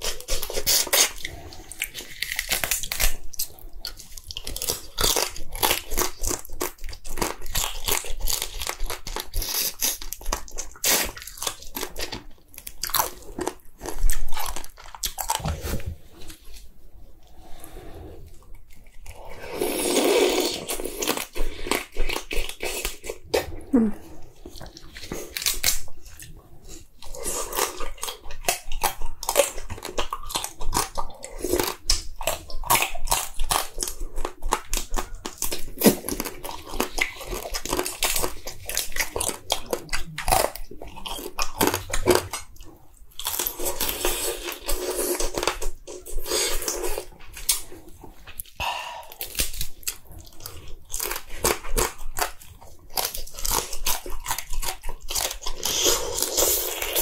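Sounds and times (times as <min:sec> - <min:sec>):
crunchy chewing of crab: 0:00.0 - 0:15.7, 0:18.2 - 0:57.0.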